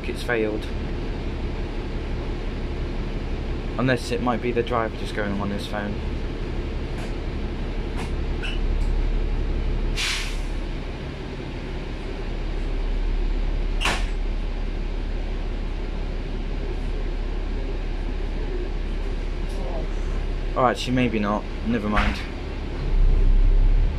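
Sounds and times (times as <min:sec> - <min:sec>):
bus engine rumble: 0:00.0 - 0:23.9
air brake hiss: 0:10.0 - 0:10.6.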